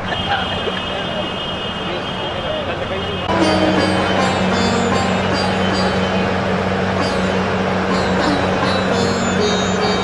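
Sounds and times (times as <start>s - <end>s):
indistinct talking: 0.0s - 10.0s.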